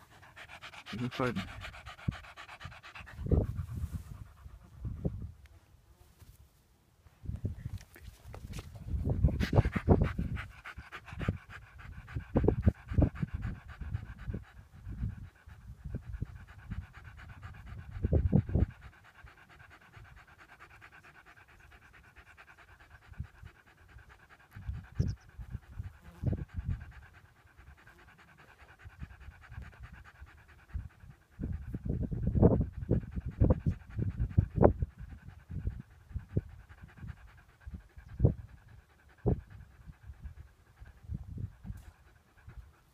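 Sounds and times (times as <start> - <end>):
dog panting: 0.0 - 5.4, 7.7 - 42.9.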